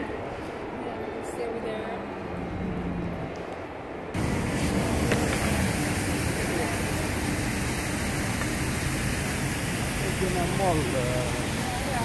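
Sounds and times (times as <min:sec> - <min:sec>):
faint voices of passers-by: 0:00.0 - 0:12.0
traffic rumble: 0:00.0 - 0:12.0.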